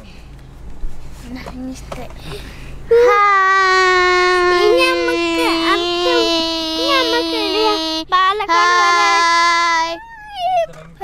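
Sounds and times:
second child's wavering voice: 0:02.9 - 0:10.8.

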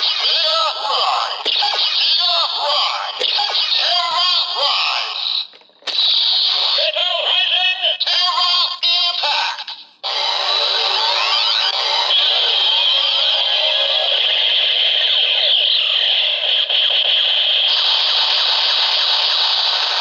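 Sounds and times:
electronic toy voice calling out: 0:00.0 - 0:14.5.

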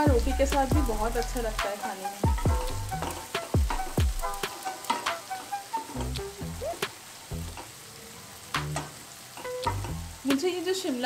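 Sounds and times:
food sizzling: 0:00.0 - 0:11.0.

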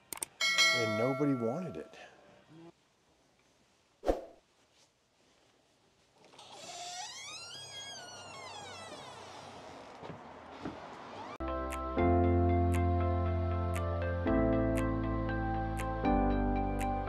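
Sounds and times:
door squeaking open: 0:06.4 - 0:09.9.

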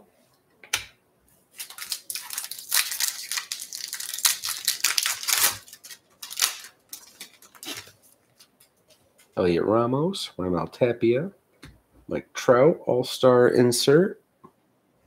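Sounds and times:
foil wrapper tearing and crinkling: 0:01.6 - 0:08.7.

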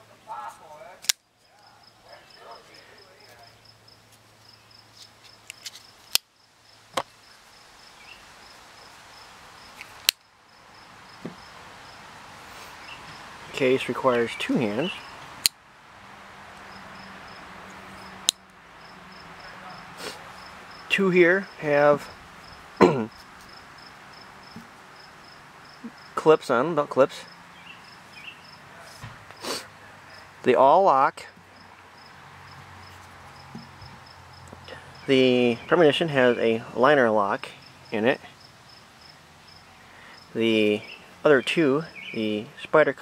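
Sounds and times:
cricket chirping: 0:01.2 - 0:30.4, 0:31.2 - 0:36.8, 0:37.5 - 0:41.2
man clearing throat: 0:22.8 - 0:23.1.

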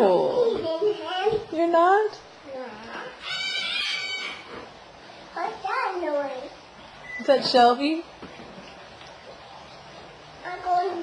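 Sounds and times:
dog whining: 0:03.1 - 0:04.7.

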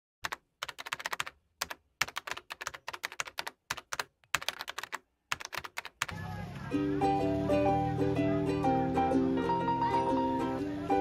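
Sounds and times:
computer keyboard typing: 0:00.2 - 0:06.2.

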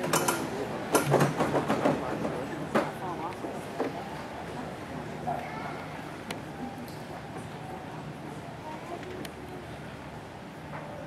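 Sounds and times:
sharp clicks and knocks: 0:00.0 - 0:02.0.

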